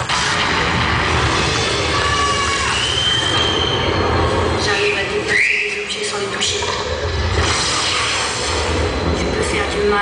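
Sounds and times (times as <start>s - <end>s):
soundtrack over sound system: 0.0s - 10.0s.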